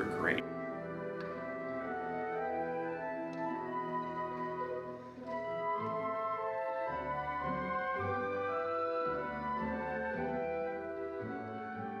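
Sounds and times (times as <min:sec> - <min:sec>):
orchestra playing slow classical music: 0:00.0 - 0:12.0.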